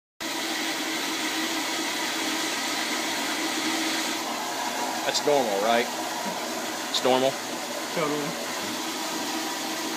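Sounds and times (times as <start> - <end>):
toilet water rushing: 0.2 - 9.9.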